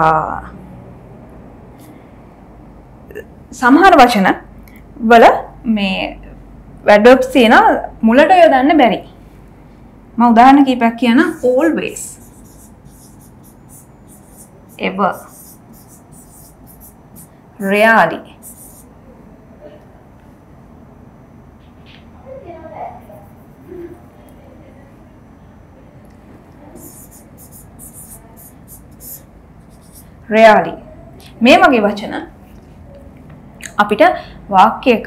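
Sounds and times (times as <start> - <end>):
marker scratching on whiteboard: 11.2 - 18.9, 23.0 - 24.0, 26.8 - 30.2.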